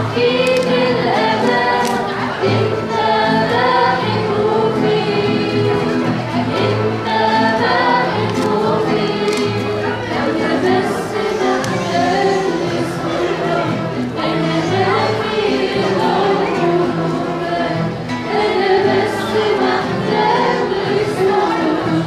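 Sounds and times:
guitar: 0:00.0 - 0:22.0
voices singing a hymn: 0:00.0 - 0:22.0.

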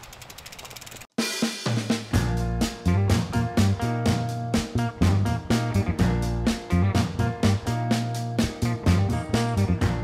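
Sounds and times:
bicycle freewheel ticking: 0:00.0 - 0:01.1
music with drum beat and bass: 0:01.2 - 0:10.0.

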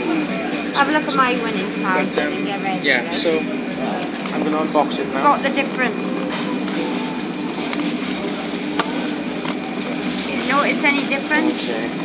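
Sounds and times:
busy restaurant din: 0:00.0 - 0:12.0.

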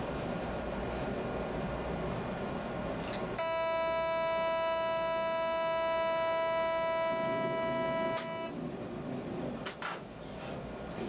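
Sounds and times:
hooting warning tone: 0:03.4 - 0:08.6.

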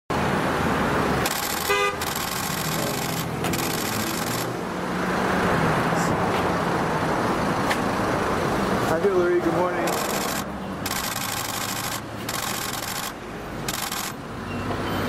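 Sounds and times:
street traffic noise: 0:00.1 - 0:15.0
car horn toot: 0:01.6 - 0:02.1.

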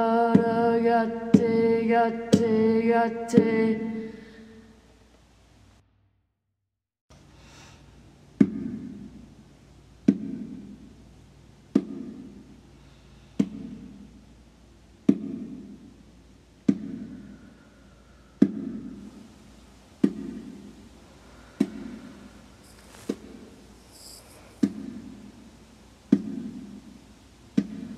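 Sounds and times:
bongo strokes: 0:16.6 - 0:27.9.

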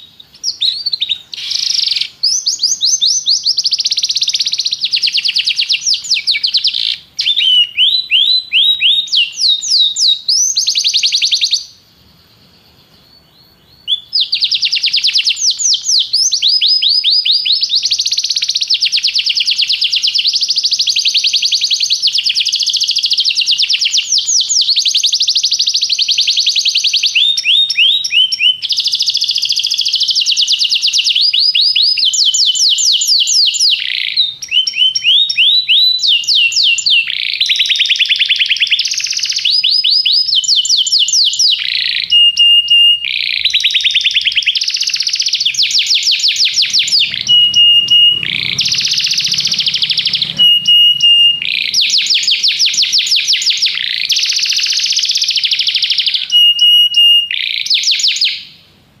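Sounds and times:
canary singing trills: 0:00.0 - 0:58.6
short whistled notes: 0:45.6 - 0:55.0.

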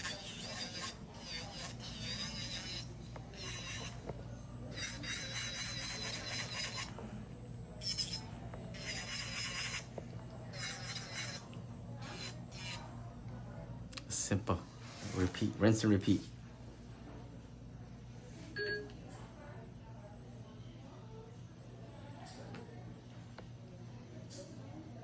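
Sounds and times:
nail file rasping: 0:00.0 - 0:04.0, 0:04.7 - 0:06.9, 0:07.8 - 0:09.9, 0:10.5 - 0:11.4, 0:12.0 - 0:12.8.

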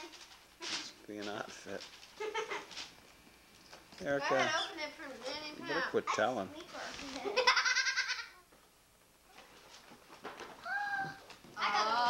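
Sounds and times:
girl laughing squeal: 0:07.4 - 0:08.4, 0:10.6 - 0:12.0.

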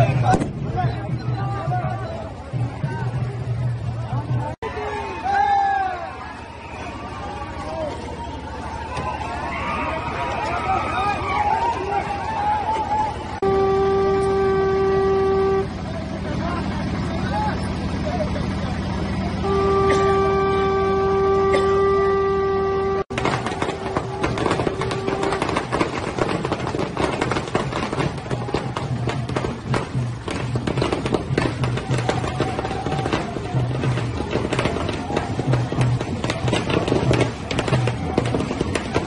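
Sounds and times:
crowd noise: 0:00.0 - 0:39.0
horn long steady notes: 0:00.0 - 0:39.0
sharp percussive hits: 0:23.1 - 0:39.0.

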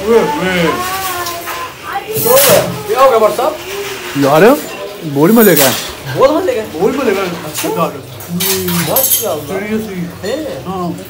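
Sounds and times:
dishes and cutlery clinking: 0:00.8 - 0:10.0.

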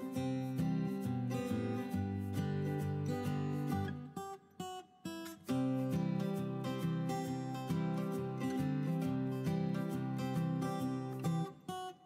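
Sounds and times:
strummed acoustic guitar: 0:00.0 - 0:12.0.

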